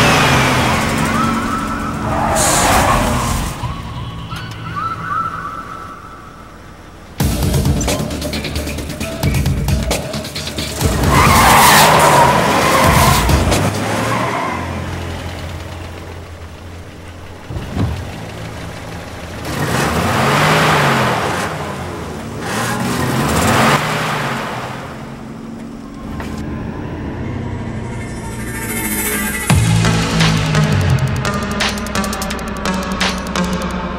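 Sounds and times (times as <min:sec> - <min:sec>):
car engine revving: 0:00.0 - 0:05.2, 0:05.8 - 0:33.9.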